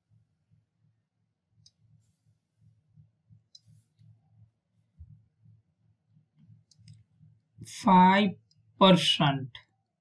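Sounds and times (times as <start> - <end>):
faint low hum: 0.0 - 10.0
soft clicks: 1.6 - 1.9, 6.4 - 7.1.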